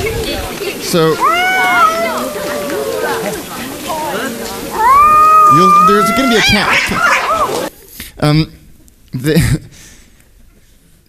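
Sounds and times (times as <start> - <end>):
cat yowling: 1.1 - 7.7.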